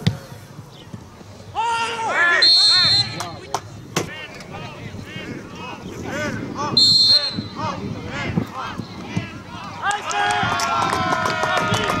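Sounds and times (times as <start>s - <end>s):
players shouting: 1.5s - 12.0s
referee's whistle blast: 2.4s - 3.2s, 6.8s - 7.6s.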